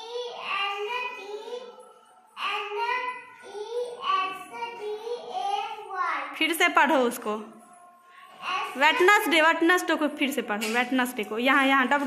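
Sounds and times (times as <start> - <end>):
child chanting sing-song: 0.0 - 6.4.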